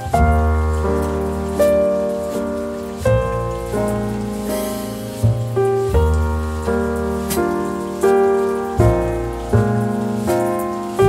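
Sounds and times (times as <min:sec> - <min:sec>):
jazz-blues keyboard chords: 0:00.0 - 0:11.0.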